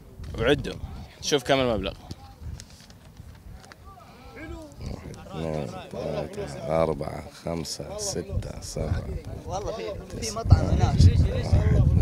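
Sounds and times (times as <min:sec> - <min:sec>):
faint men's voices: 0:00.2 - 0:12.0.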